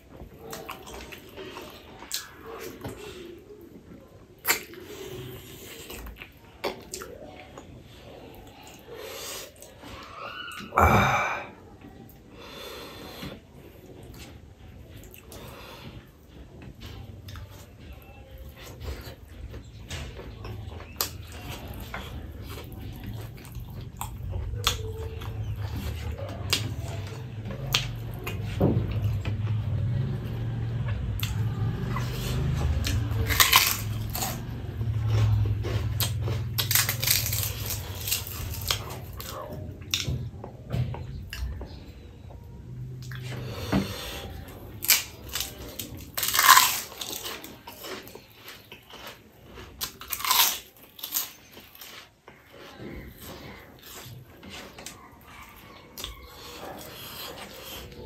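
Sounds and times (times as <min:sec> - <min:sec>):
wet chewing and lip-smacking: 0:00.0 - 0:10.7, 0:13.2 - 0:40.2, 0:42.3 - 0:58.0
prawn cracker crunching: 0:31.2 - 0:39.4, 0:44.7 - 0:52.8.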